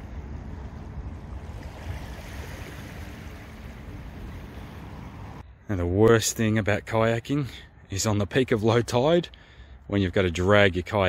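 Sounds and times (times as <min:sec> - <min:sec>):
small waves washing on shore: 0:00.0 - 0:05.4
wind buffeting microphone: 0:00.0 - 0:05.4.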